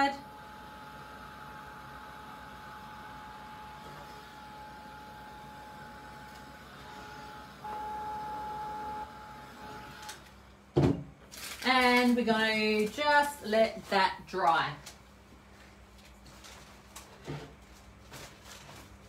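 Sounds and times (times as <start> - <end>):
hair dryer whine: 0.0 - 10.3.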